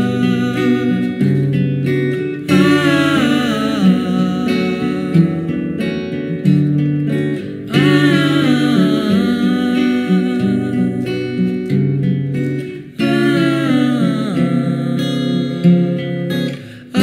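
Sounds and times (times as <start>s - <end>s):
person singing or humming: 0.0s - 1.4s, 2.4s - 5.7s, 7.7s - 11.6s, 13.0s - 16.1s, 16.8s - 17.0s
acoustic guitar song: 0.0s - 17.0s.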